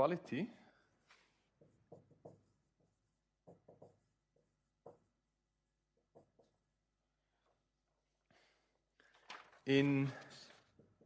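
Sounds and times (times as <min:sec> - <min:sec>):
marker scraping on whiteboard: 0:00.1 - 0:07.0.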